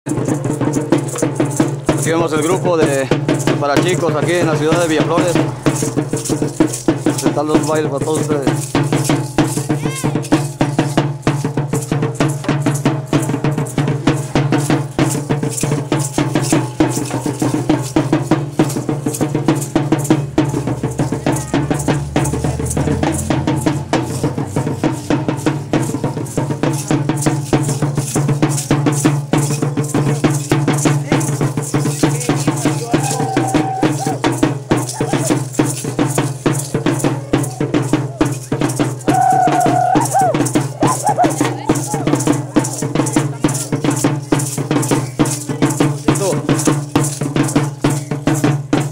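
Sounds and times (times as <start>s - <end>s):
rattles shaken: 0.1s - 48.9s
stick-beaten drum: 0.1s - 48.9s.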